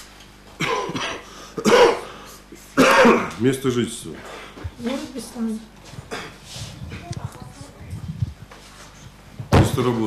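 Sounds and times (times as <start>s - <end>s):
person clearing throat: 0.6s - 3.4s, 6.1s - 6.4s.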